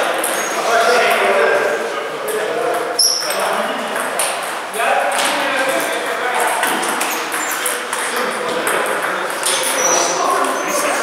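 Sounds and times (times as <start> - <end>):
people talking: 0.0 - 11.0
table tennis balls clicking: 2.2 - 10.9.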